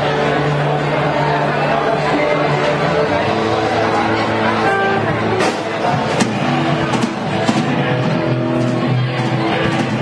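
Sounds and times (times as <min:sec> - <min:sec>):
rock band playing live: 0:02.0 - 0:10.0
sharp drum hits: 0:04.7 - 0:07.7.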